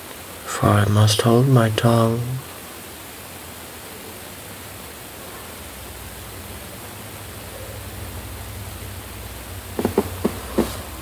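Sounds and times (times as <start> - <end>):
recording hiss: 0.0 - 11.0
short knocks: 9.8 - 10.9.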